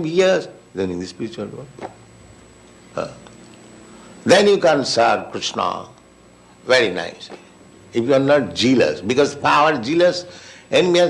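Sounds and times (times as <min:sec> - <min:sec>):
background hiss: 0:00.0 - 0:11.0
man saying uh: 0:03.0 - 0:03.3.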